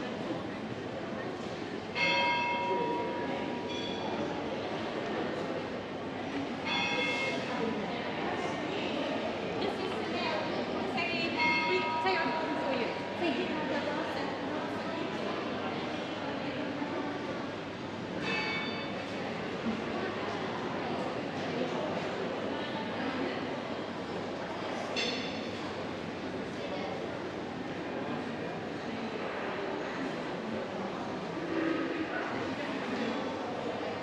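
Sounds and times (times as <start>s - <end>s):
murmur of people: 0.0s - 34.0s.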